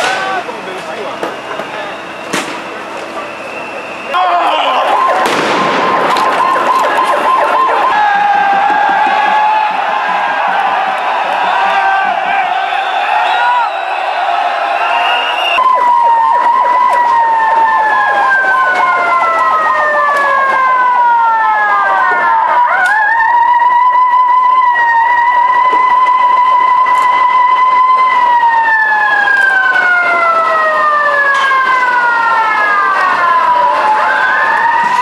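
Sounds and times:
street noise clatter: 0:00.0 - 0:35.0
siren wailing: 0:01.1 - 0:35.0.

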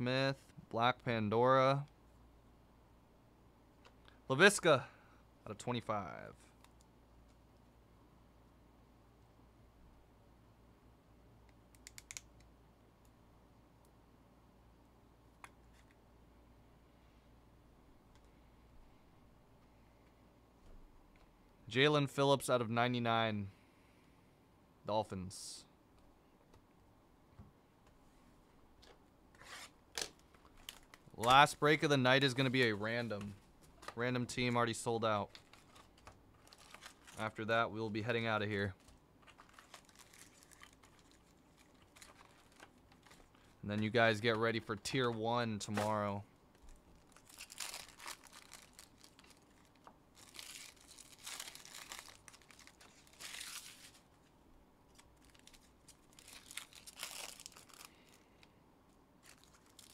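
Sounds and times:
foil wrappers tearing and crinkling: 0:29.4 - 0:31.1, 0:35.3 - 0:37.4, 0:38.8 - 0:43.6, 0:47.0 - 0:54.1, 0:54.9 - 0:58.2, 0:59.2 - 0:59.9.

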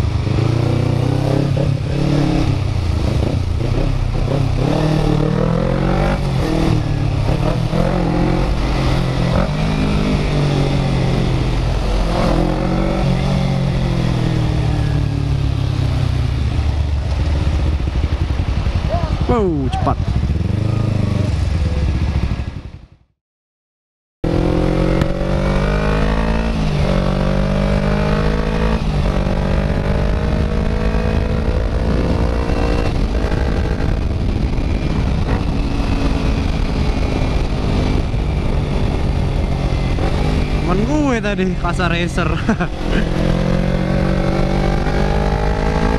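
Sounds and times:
motorcycle engine accelerating: 0:00.0 - 0:23.1, 0:24.2 - 0:45.9.

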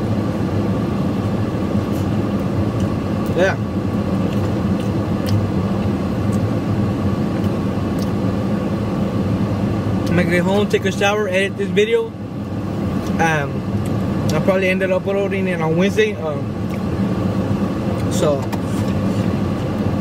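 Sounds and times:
air conditioning blowing: 0:00.0 - 0:20.0.

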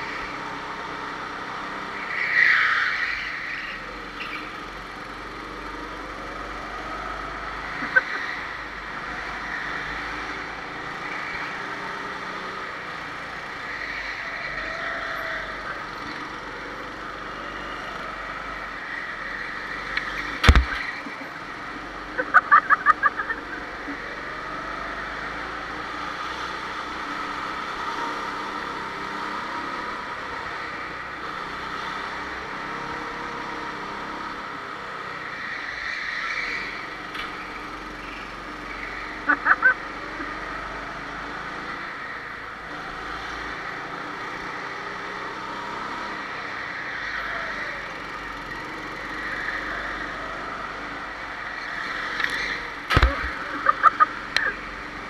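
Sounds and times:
go-kart engines running: 0:00.0 - 0:55.0.

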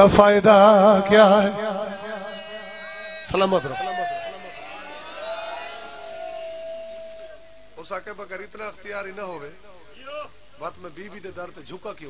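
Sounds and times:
loudspeaker steady tone: 0:00.0 - 0:04.6.

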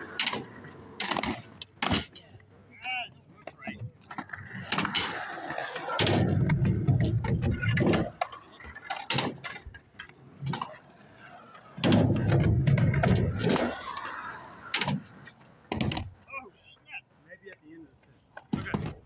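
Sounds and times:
skateboard clacks: 0:00.0 - 0:16.4, 0:18.3 - 0:19.0
skateboard wheels rolling on concrete: 0:00.0 - 0:19.0.

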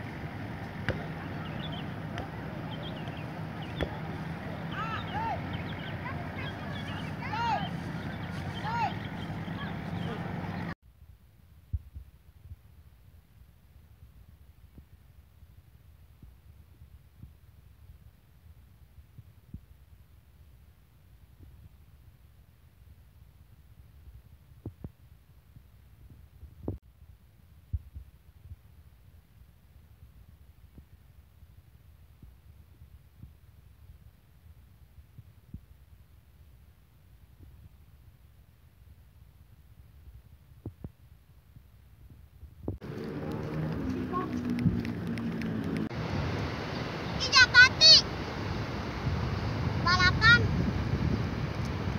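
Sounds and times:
wind buffeting microphone: 0:40.0 - 0:46.6, 0:48.4 - 0:51.9.

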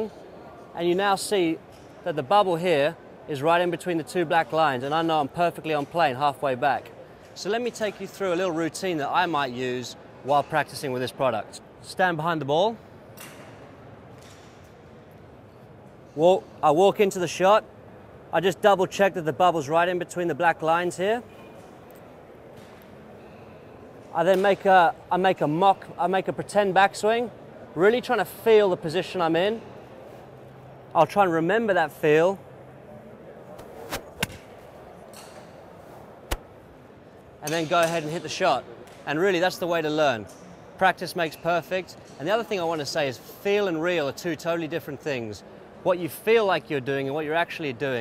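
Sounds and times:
large hall room noise: 0:00.0 - 0:48.0
golf club swinging: 0:33.5 - 0:34.8, 0:35.4 - 0:36.6.

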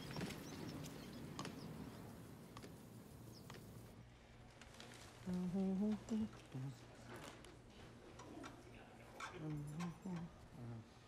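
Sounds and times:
faint clicks and taps: 0:00.0 - 0:01.7.

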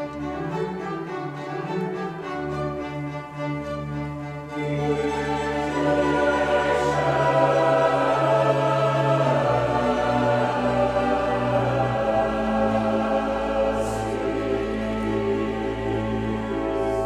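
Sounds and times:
choir singing: 0:00.0 - 0:17.0
orchestra playing: 0:00.0 - 0:17.0.

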